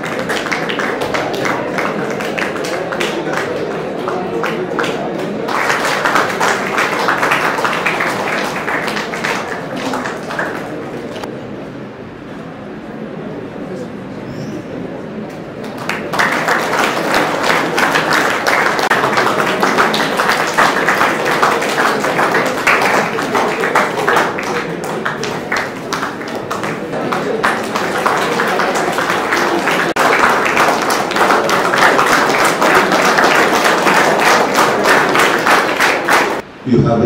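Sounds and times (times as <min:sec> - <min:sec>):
audience applauding: 0:00.0 - 0:11.3, 0:15.5 - 0:36.5.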